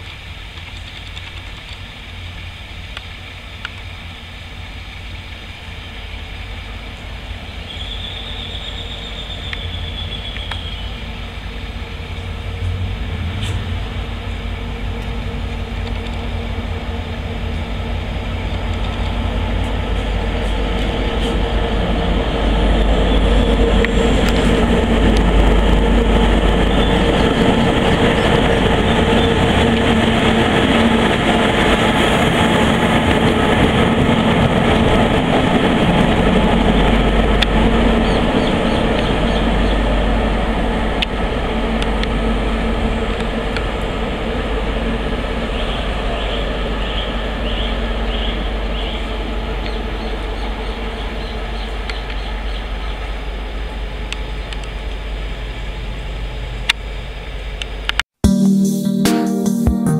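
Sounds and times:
diesel locomotive passing: 0.0 - 58.0.

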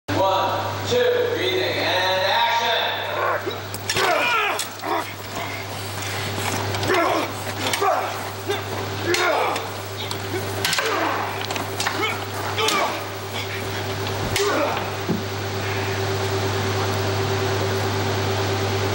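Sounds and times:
steady low hum: 0.1 - 18.9
people shouting: 2.0 - 15.2.

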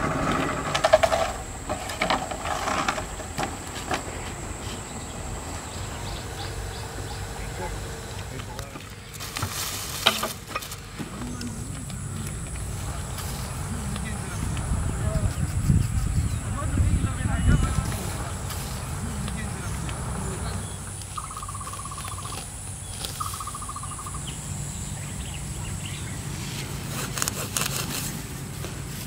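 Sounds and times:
low outdoor rumble: 0.0 - 29.0
high-pitched insect hiss: 0.2 - 28.4
animal pulsed trill: 4.0 - 8.4, 11.1 - 26.3.

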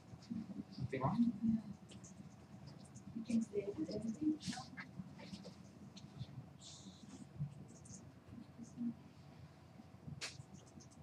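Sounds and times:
soft low voices: 0.0 - 2.1, 2.8 - 9.1.

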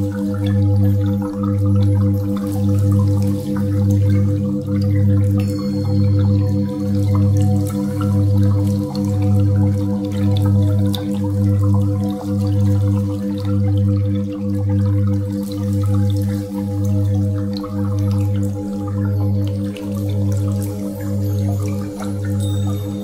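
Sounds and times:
ambient drone music: 0.0 - 23.0
water dripping and trickling: 0.0 - 23.0.

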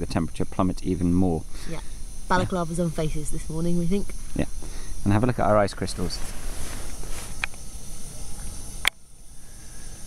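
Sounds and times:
gas stove burner hissing: 0.0 - 10.0.

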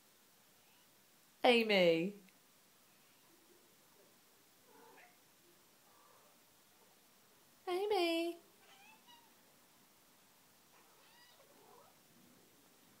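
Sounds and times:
cat meowing: 8.6 - 9.4, 10.8 - 11.9.

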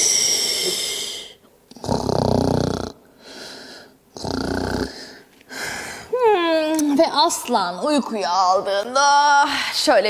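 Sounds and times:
woman fake snoring: 0.0 - 3.0, 4.2 - 5.2.

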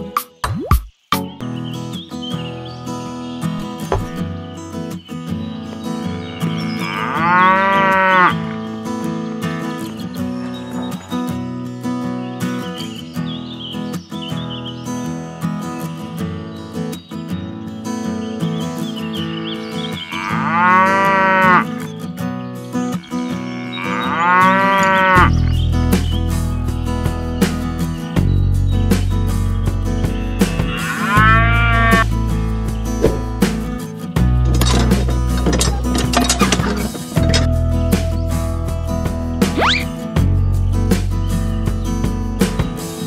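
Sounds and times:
acoustic guitar music: 1.2 - 43.0
cow mooing: 6.8 - 8.4, 20.0 - 21.7, 22.9 - 25.3, 30.2 - 32.0.

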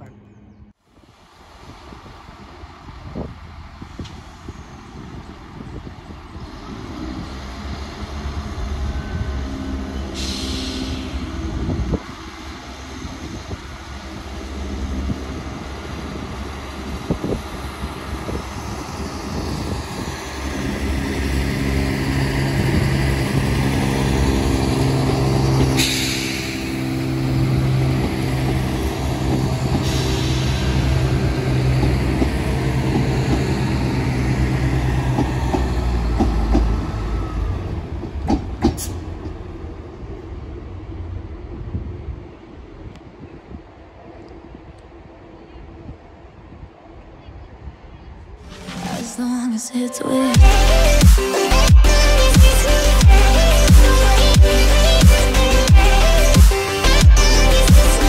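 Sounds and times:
diesel train engines running: 0.0 - 58.0.

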